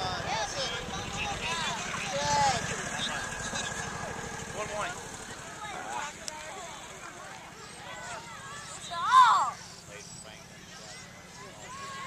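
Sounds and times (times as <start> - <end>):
distant voices shouting: 0.0 - 12.0.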